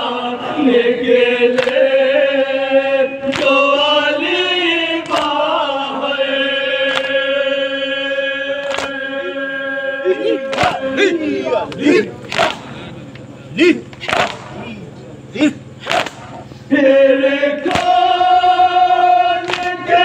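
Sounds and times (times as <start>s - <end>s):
men chanting: 0.0s - 20.0s
hands striking chests: 13.9s - 14.6s.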